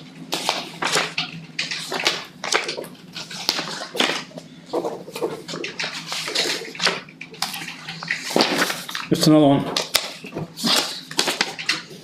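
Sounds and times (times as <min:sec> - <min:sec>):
paper rustling and shuffling: 0:00.3 - 0:12.0.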